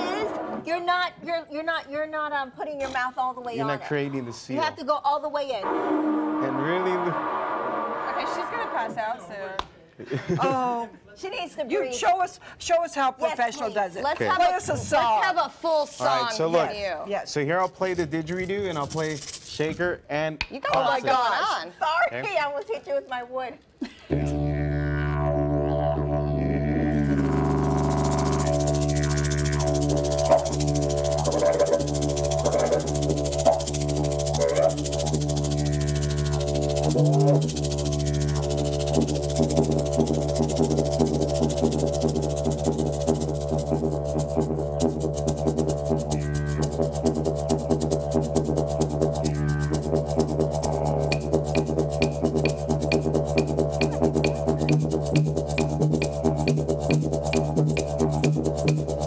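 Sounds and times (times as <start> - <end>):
didgeridoo drone: 0.0 - 0.8, 5.6 - 8.9, 24.1 - 59.0
hand shaker rhythm: 17.6 - 21.4, 24.1 - 59.0.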